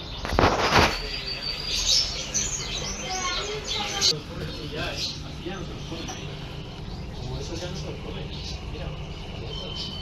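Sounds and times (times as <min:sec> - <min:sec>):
cage birds chirping: 0:00.0 - 0:10.0
loud rustle: 0:00.3 - 0:02.0.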